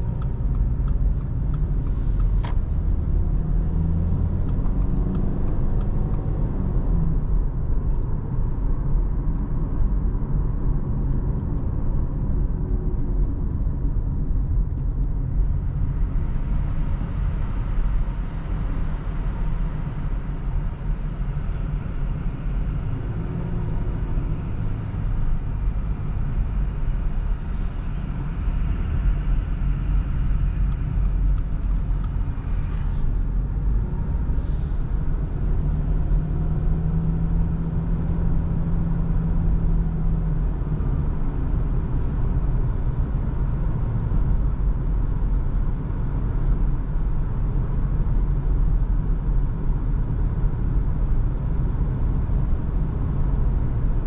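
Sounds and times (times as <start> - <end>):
car engine and road rumble: 0.0 - 54.0.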